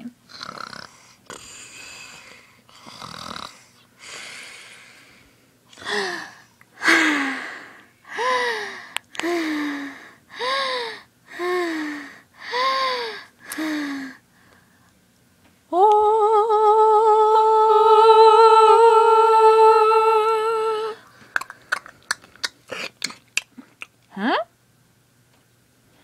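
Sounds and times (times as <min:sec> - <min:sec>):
voice imitating cartoon snoring: 0:00.3 - 0:02.1, 0:02.8 - 0:03.6.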